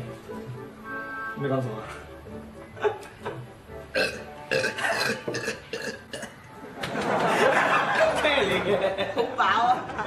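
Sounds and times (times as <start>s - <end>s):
person burping: 3.9s - 6.4s.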